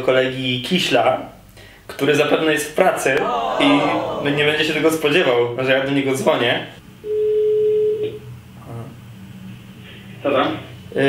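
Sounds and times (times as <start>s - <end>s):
telephone ringback beep: 7.1s - 8.0s.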